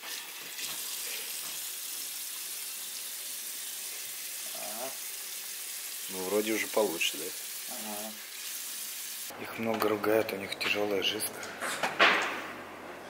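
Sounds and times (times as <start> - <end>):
tap water running into sink: 0.0 - 9.3.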